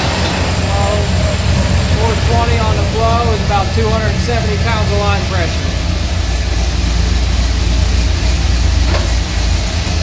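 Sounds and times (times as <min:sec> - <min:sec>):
transmission spinning with deep hum: 0:00.0 - 0:10.0.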